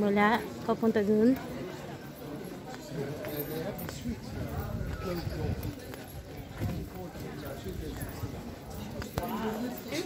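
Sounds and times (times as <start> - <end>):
footsteps on stone paving: 0.0 - 10.0
indistinct crowd voices: 0.0 - 10.0.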